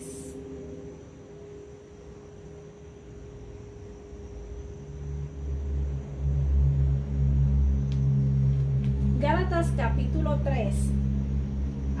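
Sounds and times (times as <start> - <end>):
faint steady tone: 0.0 - 12.0
low rumbling hum: 0.0 - 12.0.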